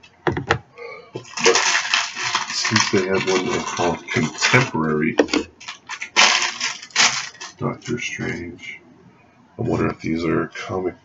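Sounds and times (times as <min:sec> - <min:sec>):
plastic packaging rustling clatter: 0:01.2 - 0:08.0.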